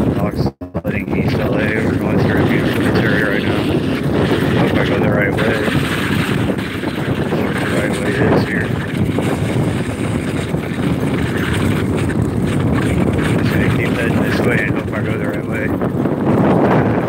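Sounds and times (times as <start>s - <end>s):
wind buffeting microphone: 0.0s - 17.0s
wheels rolling on asphalt: 1.3s - 17.0s.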